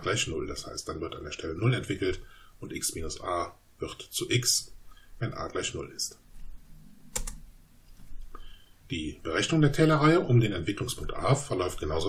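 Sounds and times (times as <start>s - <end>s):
computer keyboard key click: 7.1s - 7.4s.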